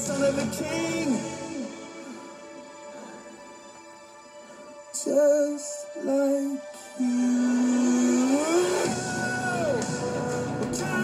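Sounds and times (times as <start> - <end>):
pop-rock band playing: 0.0 - 1.6, 8.0 - 11.0
person singing a long note: 5.0 - 9.8.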